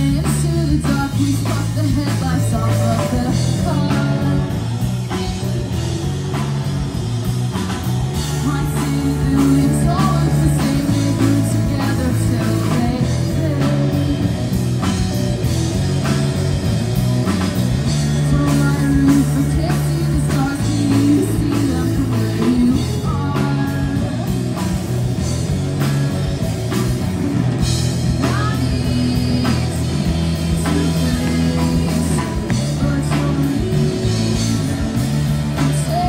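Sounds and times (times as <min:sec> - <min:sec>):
woman singing lead: 0:00.0 - 0:05.5, 0:08.2 - 0:15.0, 0:17.9 - 0:24.7, 0:27.9 - 0:36.0
drum kit: 0:00.0 - 0:36.0
electric guitars: 0:00.0 - 0:36.0.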